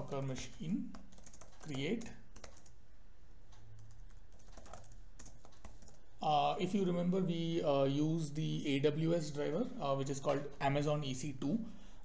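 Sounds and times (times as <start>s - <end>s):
computer keyboard typing: 0.0s - 2.8s, 3.7s - 6.1s.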